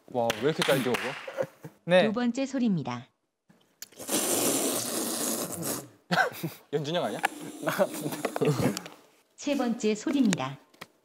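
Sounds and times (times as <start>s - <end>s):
person slurping noodles: 3.8s - 6.0s, 7.1s - 8.8s.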